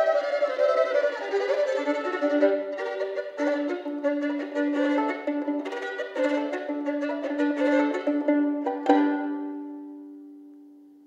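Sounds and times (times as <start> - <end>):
solo violin double stops: 0.0 - 10.6.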